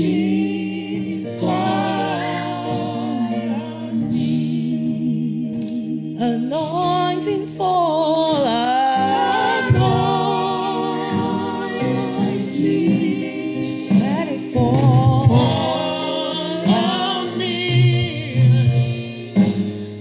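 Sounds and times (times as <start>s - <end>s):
woman singing gospel song: 0.0s - 19.8s.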